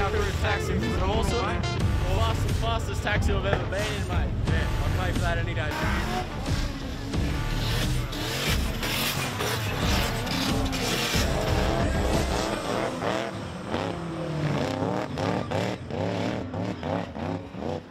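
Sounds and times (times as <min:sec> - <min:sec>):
electronic remix music: 0:00.0 - 0:17.4
car engines revving: 0:00.0 - 0:17.9
tyres squealing: 0:05.7 - 0:17.8.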